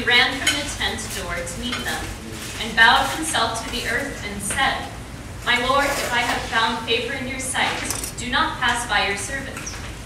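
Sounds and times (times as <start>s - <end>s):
people talking: 0.0s - 9.8s
cutlery and dishes clinking: 7.8s - 8.2s.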